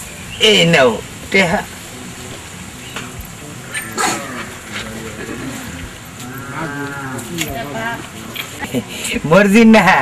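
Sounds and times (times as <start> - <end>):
cow mooing: 1.9 - 8.0.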